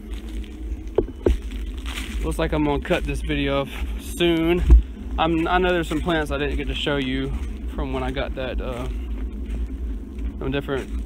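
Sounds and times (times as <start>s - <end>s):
low wind rumble on microphone: 0.0s - 11.0s.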